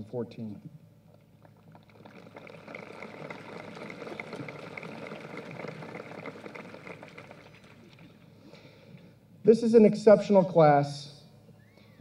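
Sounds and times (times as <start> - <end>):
audience applause: 1.5 - 8.2.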